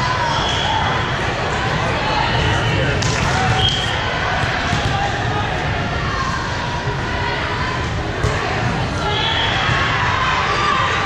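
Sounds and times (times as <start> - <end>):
many voices echoing: 0.0 - 11.0.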